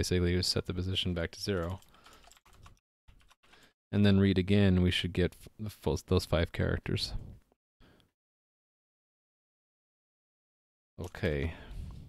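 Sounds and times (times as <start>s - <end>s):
typing on computer keyboard: 1.4s - 3.8s.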